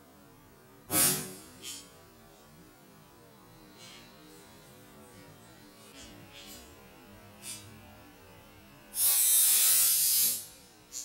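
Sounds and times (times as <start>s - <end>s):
compressed air hissing: 0.9s - 1.8s, 7.4s - 7.7s, 9.0s - 11.0s.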